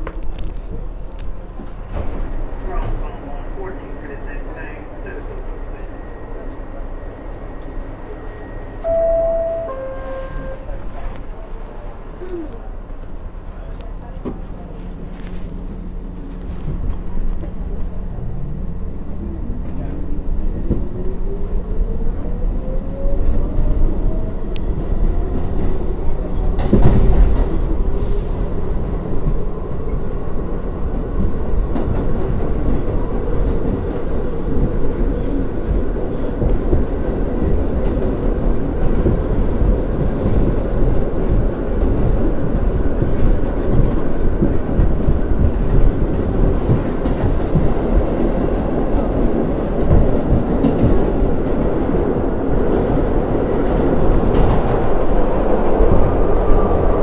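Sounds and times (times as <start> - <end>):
wheels rumbling on rail: 0.0 - 57.0
subway traction motor whine: 1.4 - 57.0.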